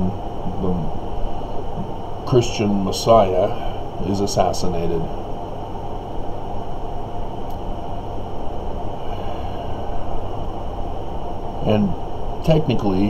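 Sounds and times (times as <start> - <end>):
low rumbling background noise: 0.0 - 13.0.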